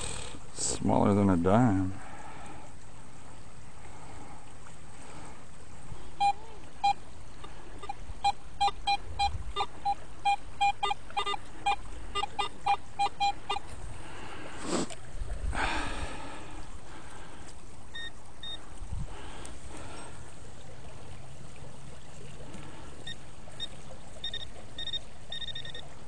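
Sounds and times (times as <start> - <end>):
metal detector beeping: 6.2 - 7.0, 7.8 - 13.7, 18.0 - 18.6, 23.1 - 25.9.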